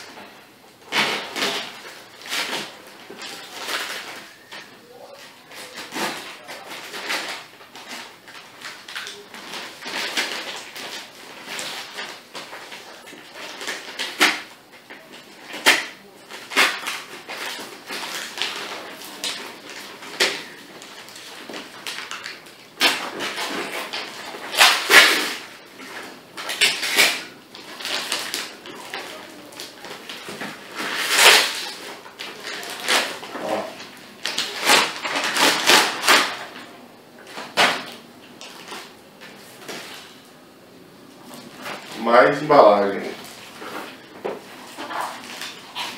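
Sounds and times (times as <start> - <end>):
paper rustling: 0.0 - 40.3, 41.1 - 45.9
paper and tape ripping: 5.5 - 36.7, 41.3 - 45.9.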